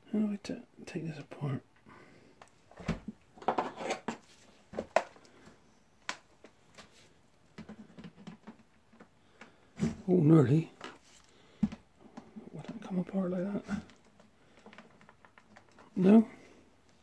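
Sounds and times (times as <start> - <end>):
plastic keyboard case clicks and knocks: 7.5 - 9.1.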